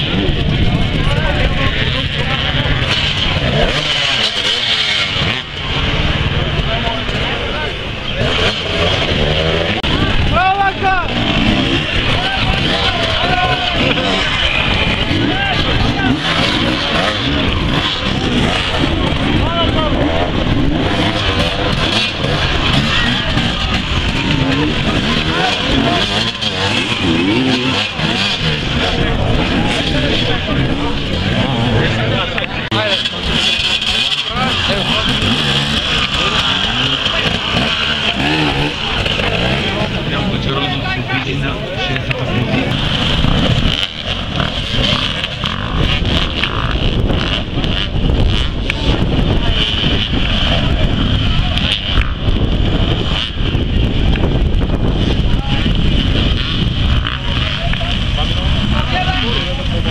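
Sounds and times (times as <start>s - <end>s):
motorcycle engines revving: 0.0s - 59.9s
spectators' voices: 0.0s - 59.9s.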